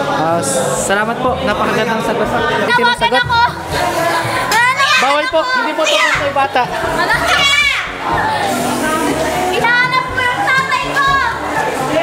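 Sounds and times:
music: 0:00.0 - 0:12.0
students shouting: 0:03.9 - 0:06.3, 0:07.0 - 0:08.7.

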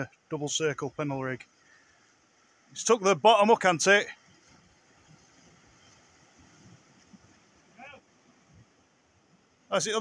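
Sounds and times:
faint outdoor hiss: 0:00.0 - 0:10.0
distant voice calling: 0:07.6 - 0:08.2.

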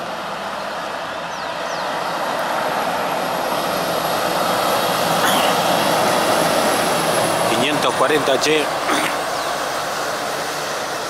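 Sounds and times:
truck engine and turbo climbing: 0:00.0 - 0:11.0.

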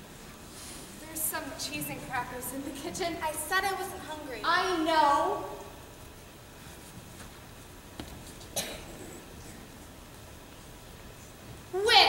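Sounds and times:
short cough: 0:08.6 - 0:09.2.

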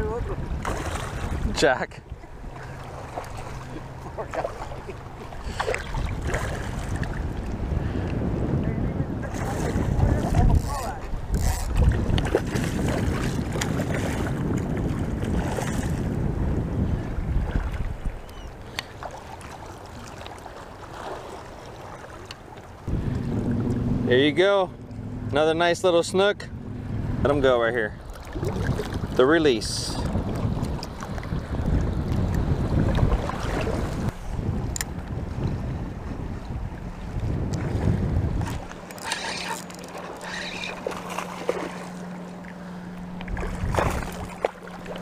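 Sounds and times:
water splashes: 0:00.0 - 0:07.6, 0:09.2 - 0:16.2, 0:17.2 - 0:26.2, 0:27.8 - 0:45.0
wind buffeting microphone: 0:00.0 - 0:19.1, 0:22.8 - 0:45.0
water lapping: 0:00.0 - 0:45.0.

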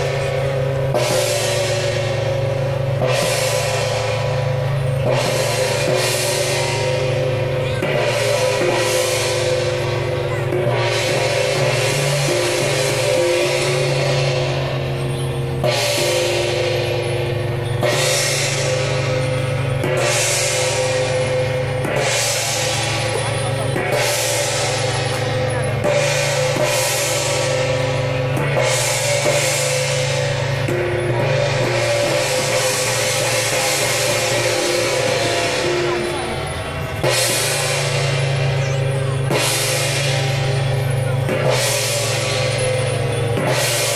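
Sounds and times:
cymbal crashes: 0:00.0 - 0:43.9
drum and cymbal procession music: 0:00.0 - 0:43.9.

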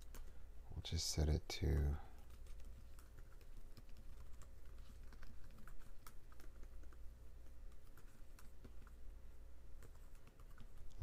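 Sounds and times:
typing on computer keyboard: 0:01.8 - 0:07.0, 0:07.7 - 0:09.0, 0:09.8 - 0:11.0.

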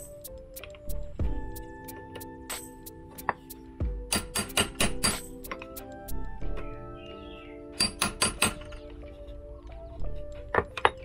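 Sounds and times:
background music: 0:00.0 - 0:11.0
hammer striking punch: 0:04.0 - 0:05.3.

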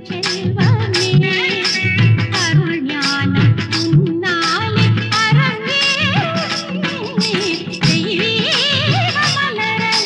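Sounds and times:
instrumental accompaniment: 0:00.0 - 0:10.0
percussion beat: 0:00.0 - 0:10.0
woman singing: 0:00.0 - 0:10.0.

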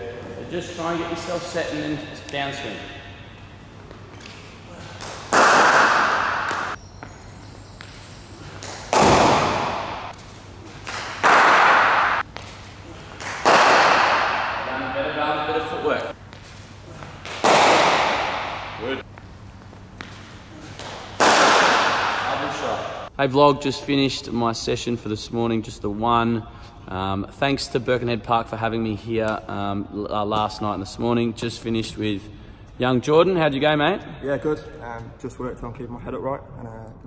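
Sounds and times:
echo in indoor hall: 0:00.0 - 0:04.0, 0:04.6 - 0:06.8, 0:08.4 - 0:16.2, 0:16.8 - 0:19.1, 0:20.2 - 0:23.8
cricket bat striking ball: 0:05.2 - 0:06.8, 0:08.7 - 0:10.1, 0:11.0 - 0:12.2, 0:13.2 - 0:14.7, 0:17.2 - 0:18.9, 0:20.8 - 0:23.0.

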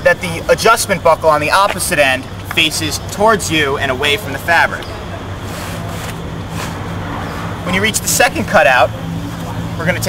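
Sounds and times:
low mechanical hum: 0:00.0 - 0:10.0
vinyl fabric rustling: 0:05.4 - 0:07.5.

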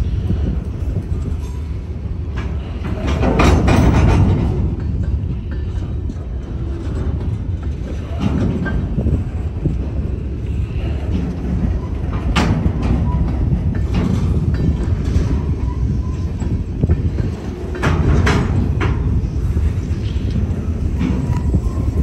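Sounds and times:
train wheels rumbling on rail: 0:00.0 - 0:22.0
wheels clacking over rail joints: 0:00.0 - 0:22.0.

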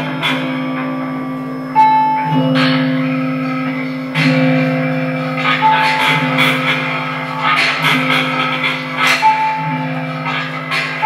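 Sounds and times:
high held tone: 0:00.0 - 0:11.0
low sustained drone: 0:00.0 - 0:11.0.

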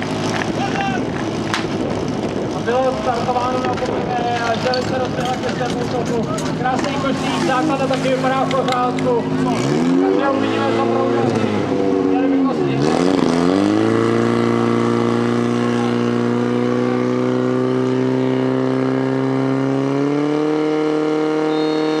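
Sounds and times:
fire pump engine running hard: 0:00.0 - 0:22.0.

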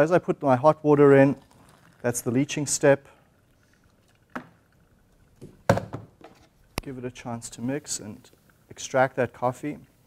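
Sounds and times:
hard objects knocking on bench: 0:05.4 - 0:06.1.

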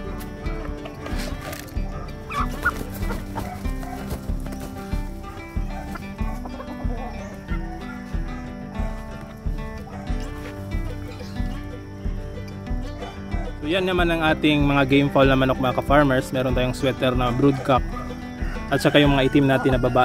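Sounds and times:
background music with beat: 0:00.0 - 0:20.0
chickens clucking: 0:00.0 - 0:20.0.

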